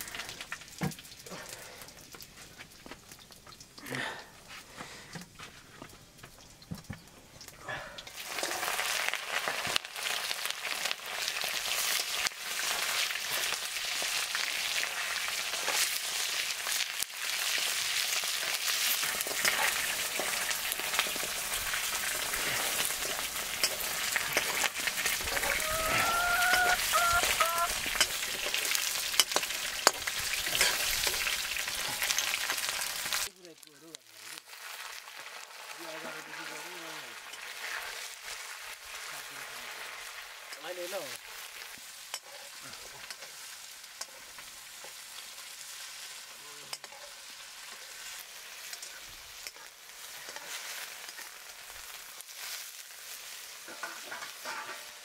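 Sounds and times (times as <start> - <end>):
meat sizzling in hot oil: 0.0 - 4.5, 5.8 - 55.0.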